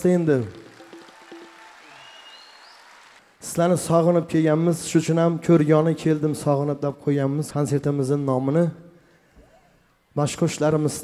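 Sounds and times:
audience applauding: 0:00.0 - 0:03.4.

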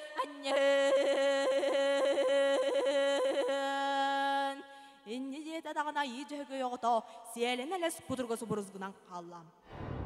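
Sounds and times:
person singing with yodel-like flips: 0:00.0 - 0:04.6
short breath: 0:04.7 - 0:05.1.

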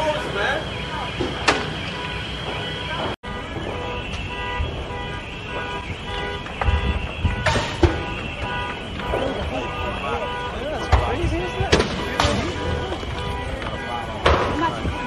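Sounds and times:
car alarms pulsing: 0:00.0 - 0:15.0
sharp bangs: 0:00.7 - 0:15.0
murmur of voices: 0:08.0 - 0:15.0.

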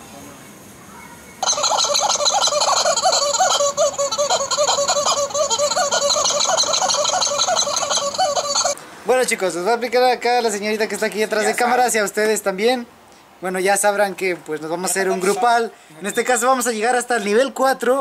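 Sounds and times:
rapid dense warbling calls: 0:01.4 - 0:08.8.

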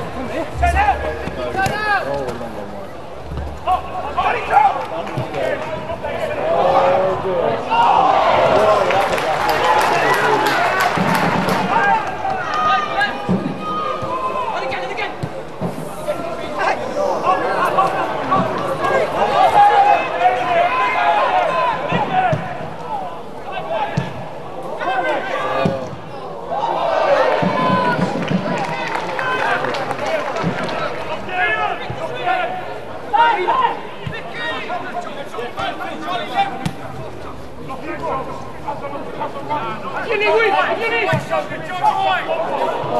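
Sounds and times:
people shouting and calling out: 0:00.0 - 0:02.4, 0:31.1 - 0:42.9
low crowd noise: 0:00.0 - 0:42.9.

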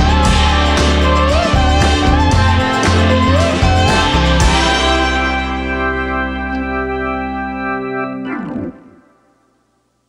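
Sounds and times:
background music held chord: 0:00.0 - 0:10.0.

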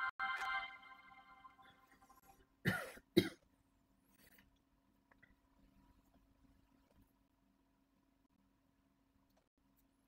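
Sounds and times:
person coughing: 0:02.6 - 0:03.4.

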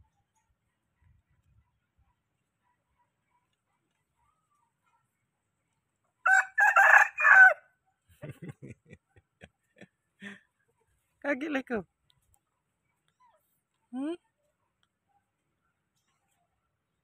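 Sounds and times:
rooster crowing: 0:06.2 - 0:07.6.

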